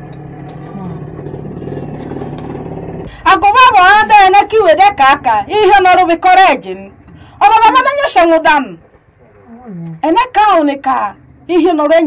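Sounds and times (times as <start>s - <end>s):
low background rumble: 0.0s - 12.0s
woman speaking loudly: 3.2s - 8.8s, 10.0s - 12.0s.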